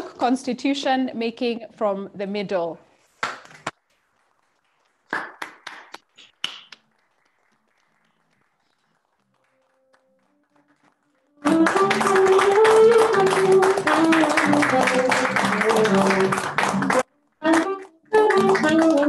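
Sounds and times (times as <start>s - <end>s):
people clapping along: 3.2s - 19.0s
acoustic guitar: 6.1s - 19.0s
saxophone melody: 11.3s - 19.0s.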